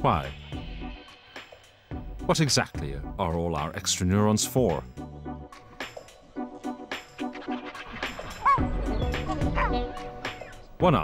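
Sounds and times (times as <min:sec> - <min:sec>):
background music: 0:00.0 - 0:11.0
chimpanzee yelps: 0:08.2 - 0:10.4.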